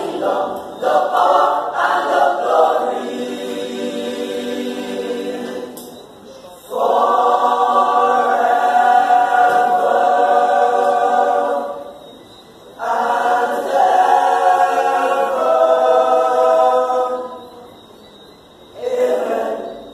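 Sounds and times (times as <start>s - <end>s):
male choir singing a cappella: 0.0s - 12.2s, 12.8s - 17.7s, 18.8s - 19.9s.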